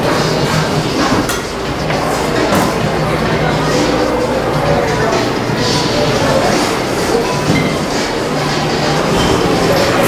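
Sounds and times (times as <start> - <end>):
background music: 0.0 - 10.0
many voices: 0.0 - 10.0
dishes clattering: 7.4 - 8.1.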